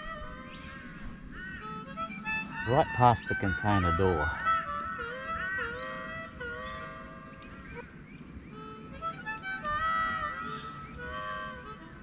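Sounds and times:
harmonica music: 0.0 - 12.0.

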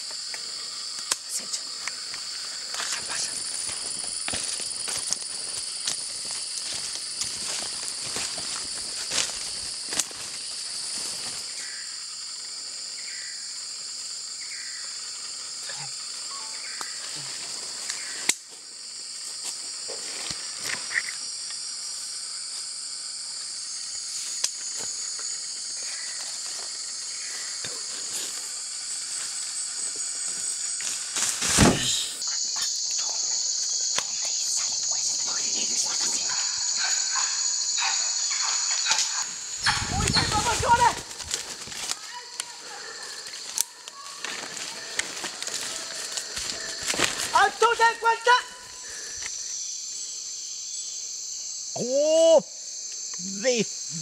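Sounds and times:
high-pitched insect drone: 0.0 - 54.0.

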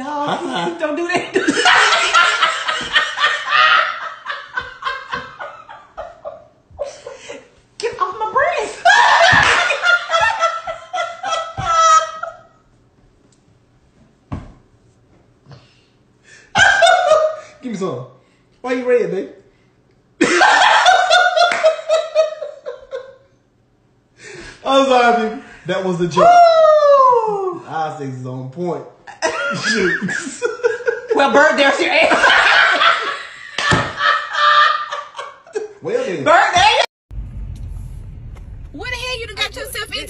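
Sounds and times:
woman and man laughing: 0.2 - 7.5, 8.8 - 12.5, 20.2 - 23.2, 29.1 - 31.3, 32.0 - 35.8
high-pitched hearty laughter: 8.8 - 12.5.

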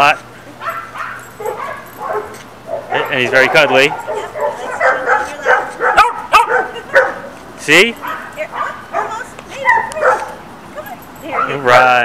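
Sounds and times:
dog yipping and whining: 0.6 - 7.4, 8.0 - 11.8.

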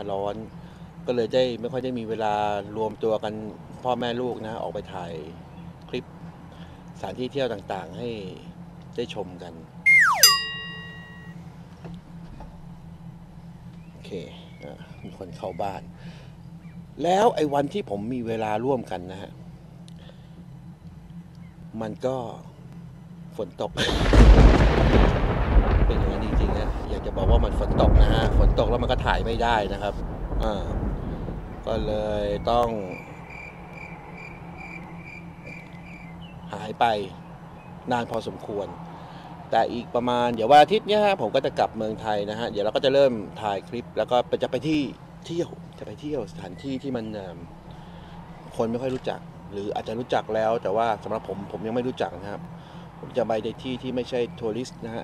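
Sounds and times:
whistle tone sliding down: 9.9 - 11.3
bell ding: 9.9 - 11.4
high-pitched chirp: 9.9 - 11.4.

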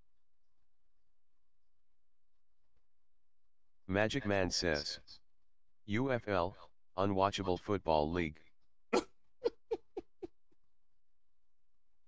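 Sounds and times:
man chuckling quietly: 9.4 - 10.3.

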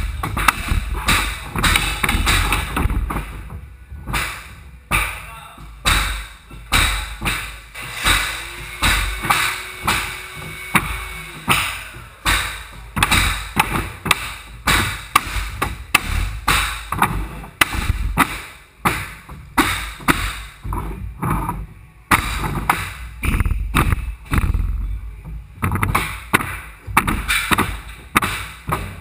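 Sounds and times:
mallets striking flooring nailers: 0.0 - 24.8, 25.6 - 29.0.

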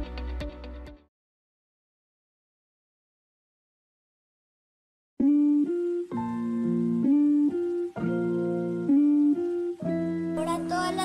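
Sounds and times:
background music melody over chords: 0.0 - 1.1, 5.2 - 11.0.

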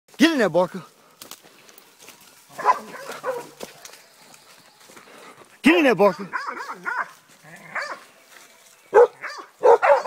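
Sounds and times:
dog barking: 2.5 - 3.9, 6.2 - 8.1, 8.9 - 10.0.

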